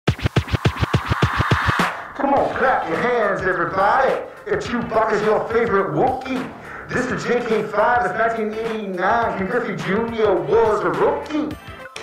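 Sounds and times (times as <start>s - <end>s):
turntable record scratches: 0.0s - 11.3s.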